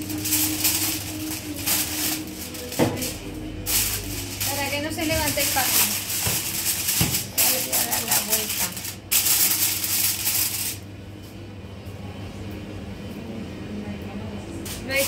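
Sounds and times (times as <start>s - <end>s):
aluminium foil crinkling: 0.0s - 10.8s
faint foil rustles: 0.0s - 10.8s.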